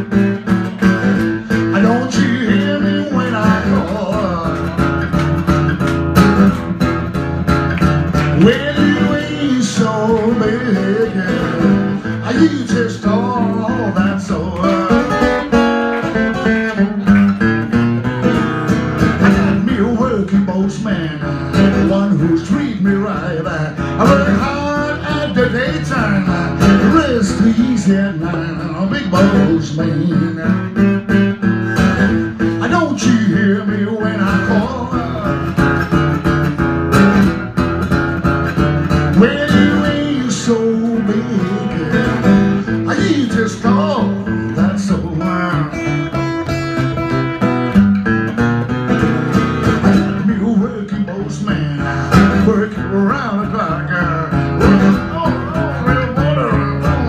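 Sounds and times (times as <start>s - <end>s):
blues acoustic guitar: 0.0s - 57.0s.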